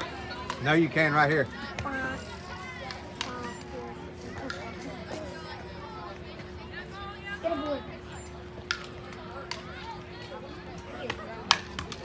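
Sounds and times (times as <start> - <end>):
faint crowd chatter: 0.0 - 12.0.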